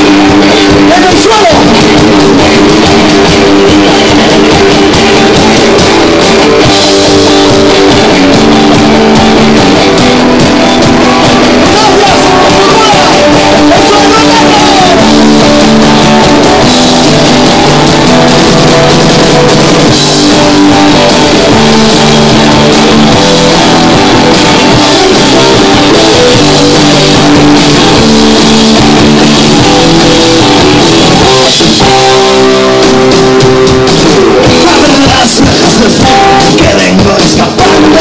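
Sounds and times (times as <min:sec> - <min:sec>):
live rock band playing: 0:00.0 - 0:38.0.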